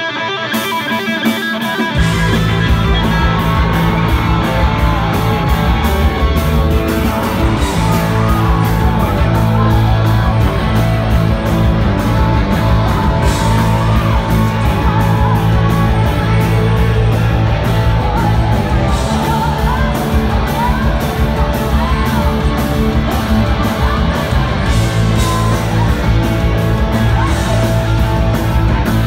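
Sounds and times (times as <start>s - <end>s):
bass guitar: 0.0s - 29.0s
distorted electric guitars: 0.0s - 29.0s
drums with cymbal beat: 0.5s - 29.0s
woman singing: 7.0s - 29.0s.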